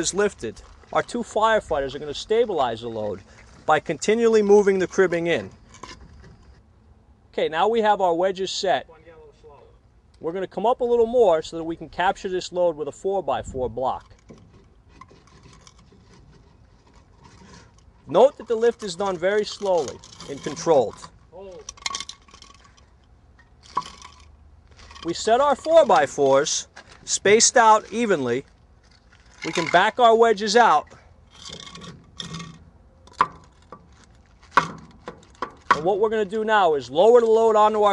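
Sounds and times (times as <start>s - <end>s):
wood scraping and rubbing: 1.9s - 6.6s, 14.0s - 22.9s, 23.6s - 30.2s, 31.3s - 35.9s.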